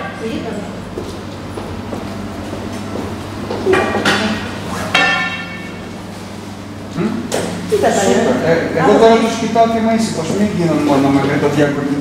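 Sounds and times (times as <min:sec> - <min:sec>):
steady low hum: 0:00.0 - 0:12.0
sharp ringing strikes: 0:03.8 - 0:06.0.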